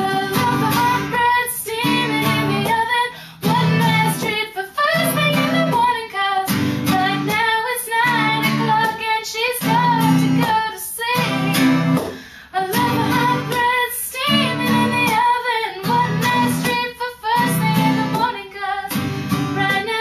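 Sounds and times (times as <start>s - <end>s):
strummed acoustic guitar: 0.0s - 20.0s
woman singing: 0.0s - 20.0s.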